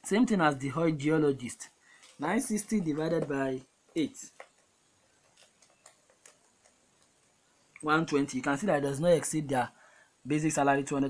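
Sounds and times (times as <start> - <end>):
man talking: 0.0 - 4.4, 7.8 - 11.0.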